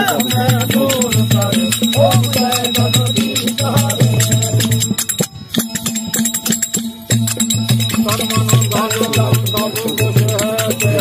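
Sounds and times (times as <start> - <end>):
rattling percussion clicks: 0.0 - 11.0
singing: 0.0 - 11.0.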